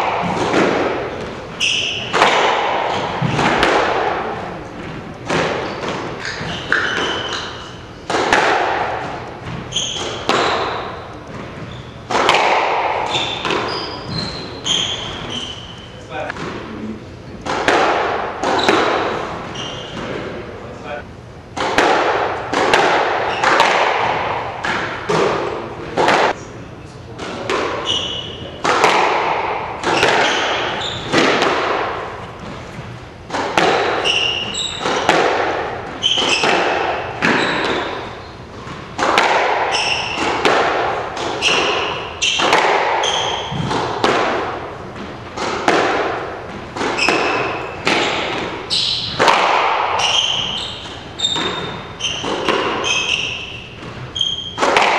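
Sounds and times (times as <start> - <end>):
squash ball smacks: 0.0 - 11.5, 12.1 - 13.8, 17.4 - 19.2, 21.5 - 26.4, 28.5 - 38.1, 38.7 - 54.9
shoe squeaks on hardwood floor: 1.6 - 2.2, 5.6 - 8.1, 9.6 - 12.1, 13.0 - 16.2, 18.5 - 20.1, 27.8 - 28.5, 29.9 - 31.2, 33.9 - 35.1, 35.9 - 36.6, 37.2 - 38.5, 39.7 - 40.3, 41.3 - 43.7, 46.9 - 49.2, 50.0 - 54.6.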